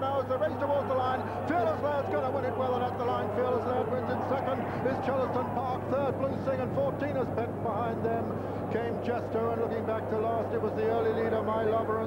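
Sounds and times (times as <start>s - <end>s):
commentator calling fast: 0.0s - 12.0s.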